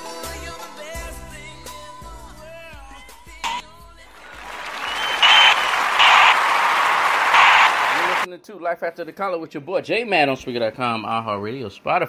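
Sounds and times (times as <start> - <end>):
music: 0.0 - 4.3
audience applause: 4.2 - 8.3
short high whistle: 4.4 - 8.2.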